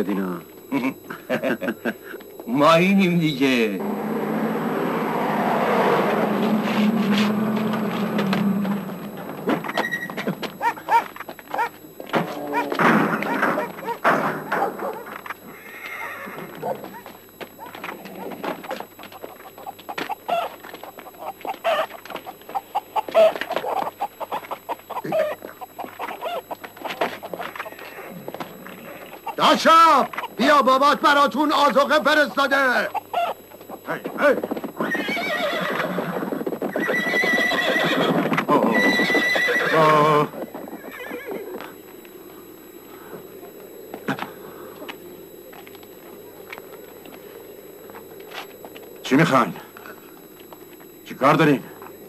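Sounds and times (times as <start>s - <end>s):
horses neighing: 3.8s - 11.0s, 15.4s - 17.1s, 34.7s - 41.7s
animal crying: 3.8s - 30.5s, 32.8s - 34.1s, 34.8s - 41.7s
hooves clattering: 6.1s - 29.2s, 33.5s - 41.7s
wavering high animal call: 15.5s - 16.6s, 19.2s - 22.0s, 22.6s - 27.0s, 32.9s - 33.4s, 34.8s - 40.0s, 40.7s - 41.6s.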